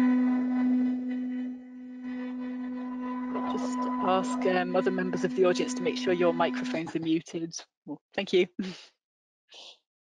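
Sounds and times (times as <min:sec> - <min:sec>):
steady humming tone: 0:00.0 - 0:07.1.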